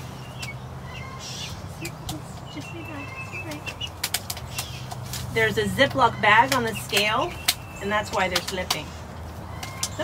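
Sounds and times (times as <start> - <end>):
chick peeps: 0.0 - 5.0.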